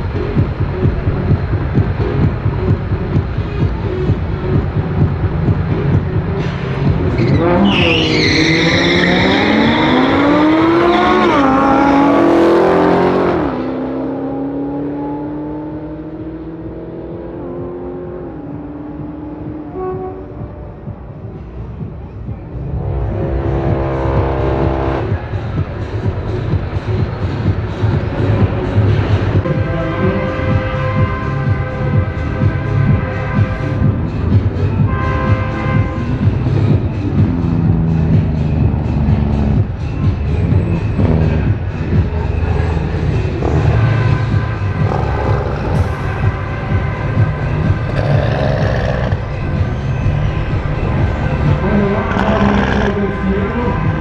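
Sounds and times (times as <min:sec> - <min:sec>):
race car engines accelerating: 0:00.0 - 0:54.0.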